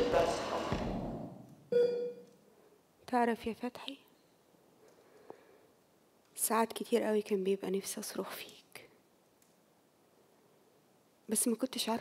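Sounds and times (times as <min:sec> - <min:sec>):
short electronic beep: 0:01.7 - 0:02.2.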